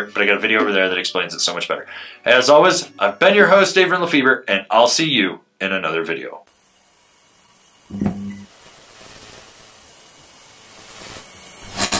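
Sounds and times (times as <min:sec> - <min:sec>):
steady hiss: 0:05.7 - 0:11.9
short electric buzz: 0:10.6 - 0:11.9.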